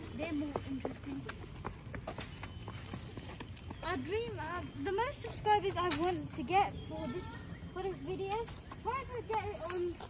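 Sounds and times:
footsteps on brick path: 0.0s - 10.0s.

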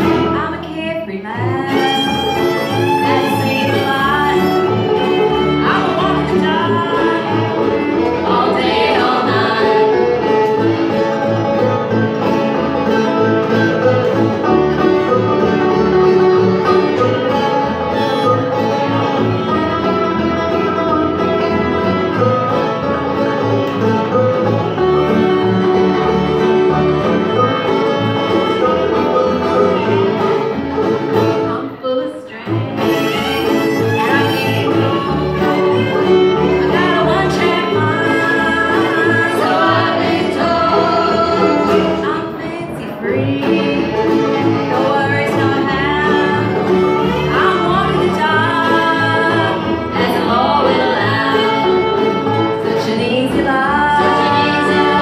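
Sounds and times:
acoustic guitar: 0.0s - 55.0s
banjo: 0.0s - 55.0s
fiddle: 0.0s - 55.0s
upright bass: 0.0s - 55.0s.

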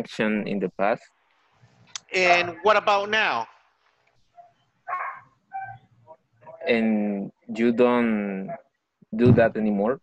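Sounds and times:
dog barking faintly: 4.3s - 7.4s.

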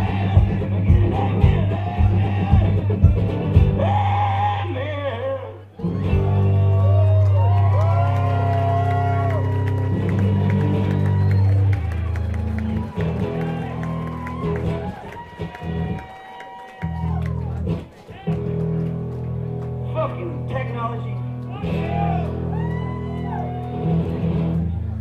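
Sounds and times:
amplified guitar music: 0.0s - 3.8s, 5.8s - 7.5s, 8.3s - 16.1s, 16.9s - 25.0s
sustained low bass notes: 0.0s - 4.0s, 5.8s - 14.9s.

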